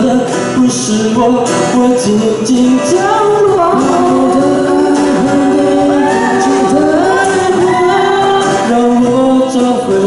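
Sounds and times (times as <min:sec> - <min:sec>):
acoustic guitar: 0:00.0 - 0:10.0
cajon drumming: 0:00.0 - 0:10.0
harmonica melody: 0:03.0 - 0:08.7.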